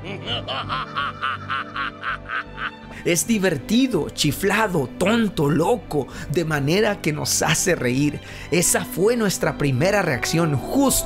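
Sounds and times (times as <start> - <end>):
man laughing heartily: 0.0 - 2.9
background music: 0.0 - 11.0.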